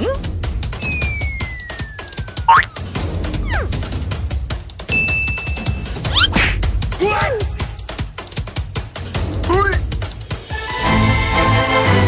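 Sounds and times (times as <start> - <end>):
upbeat music with percussive beat: 0.0 - 12.0
descending whistle tone: 0.8 - 2.7
springy boing effect: 2.4 - 2.8.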